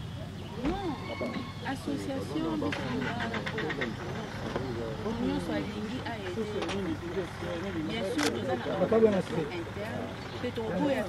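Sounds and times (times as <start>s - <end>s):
people talking: 0.5s - 11.0s.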